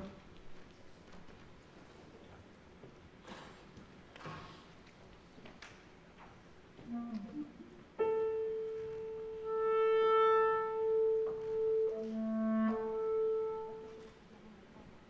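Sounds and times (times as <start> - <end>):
soft piano notes: 6.7 - 15.0
clarinets playing classical piece: 6.9 - 14.2.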